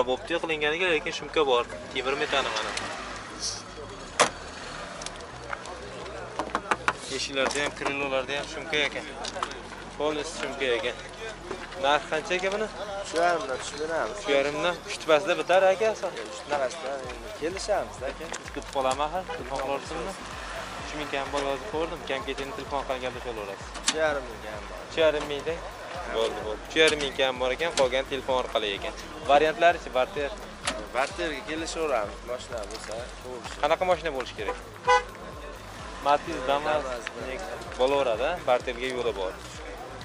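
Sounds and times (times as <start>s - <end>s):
men talking: 0.0s - 40.0s.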